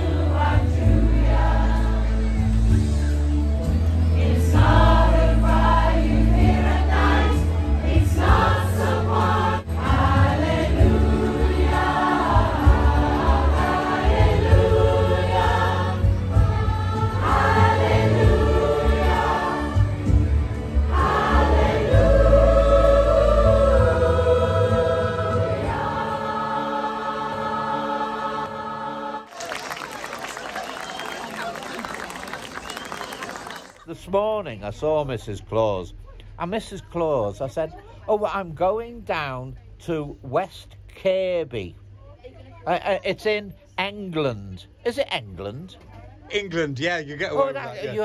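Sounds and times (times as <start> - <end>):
children's choir singing: 0.0 - 2.2, 4.2 - 29.4.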